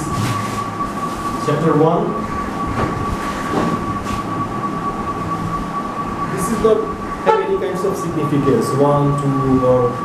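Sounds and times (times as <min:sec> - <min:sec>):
mechanical drone with high whine: 0:00.0 - 0:10.0.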